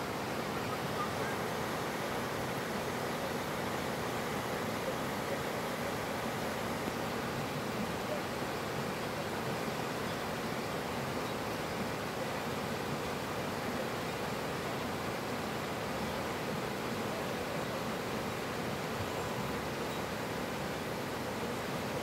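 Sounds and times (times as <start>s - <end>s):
stream rushing over rocks: 0.0s - 22.0s.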